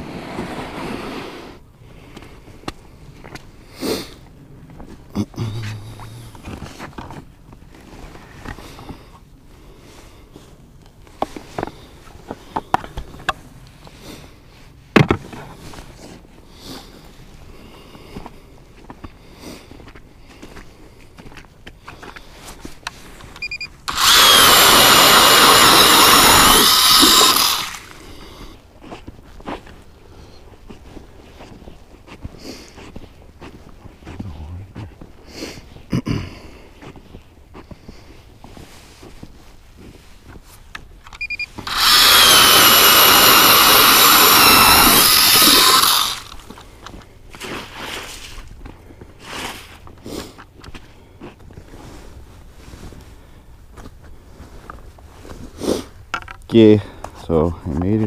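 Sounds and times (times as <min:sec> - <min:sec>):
electric ice auger whining: 0:23.9 - 0:28.2, 0:41.3 - 0:46.6.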